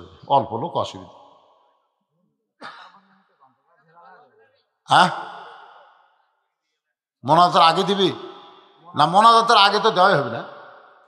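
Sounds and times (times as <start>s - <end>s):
man speaking: 0.0s - 1.1s, 3.9s - 6.0s, 7.2s - 8.2s, 8.8s - 10.5s.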